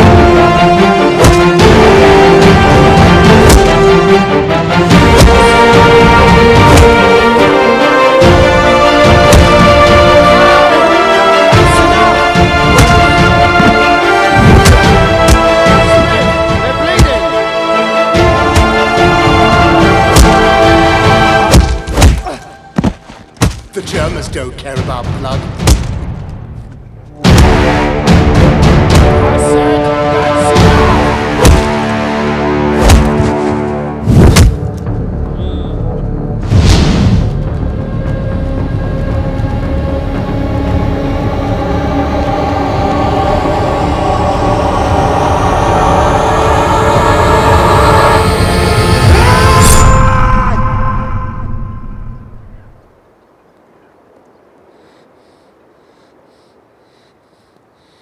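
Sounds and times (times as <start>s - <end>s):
sustained orchestral drone: 0.0s - 22.7s, 26.3s - 36.5s, 37.3s - 52.8s
low rumble: 24.9s - 53.0s
deep percussive hits: 27.2s - 29.4s
held musical chord: 38.5s - 50.1s.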